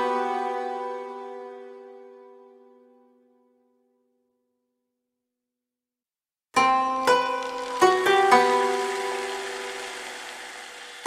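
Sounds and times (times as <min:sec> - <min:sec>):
plucked string notes ringing: 0:06.6 - 0:11.0.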